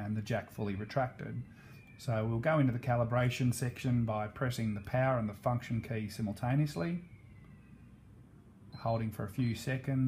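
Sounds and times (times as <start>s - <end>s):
man speaking: 0.0s - 7.1s, 8.8s - 10.0s.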